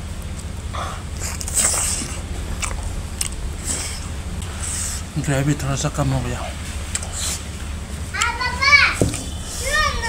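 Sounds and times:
steady low hum: 0.0s - 10.0s
person chewing with mouth open: 0.2s - 4.8s, 6.8s - 7.5s.

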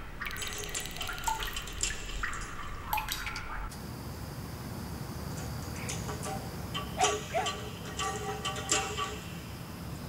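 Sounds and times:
water drops plinking: 0.0s - 3.7s.

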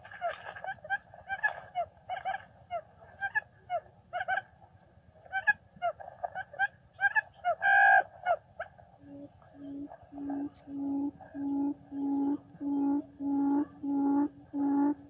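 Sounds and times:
drawn-out bird call: 5.4s - 15.0s
birds chirping: 9.0s - 15.0s
low repeating hoot: 9.0s - 15.0s.

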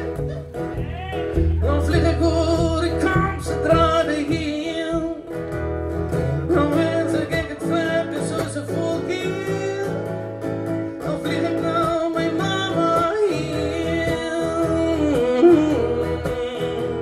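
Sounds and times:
electric guitar: 0.0s - 17.0s
man singing into microphone: 0.8s - 5.5s, 6.4s - 10.2s, 10.9s - 17.0s.

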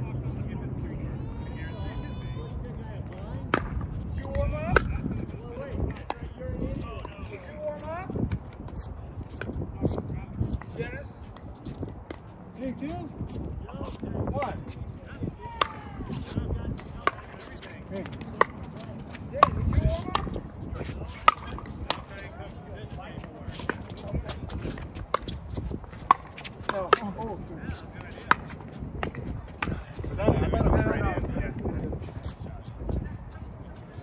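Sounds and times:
paddles hitting plastic ball: 16.8s - 20.5s.

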